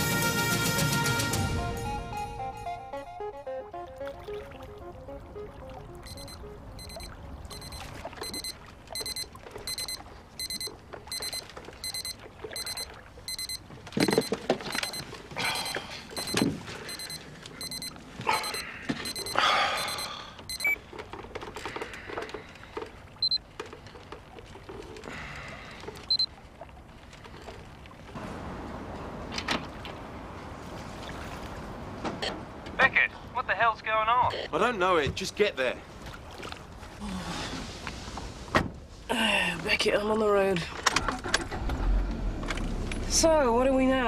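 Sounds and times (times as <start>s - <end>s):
pager beeping: 6.0s - 15.0s, 15.6s - 20.8s.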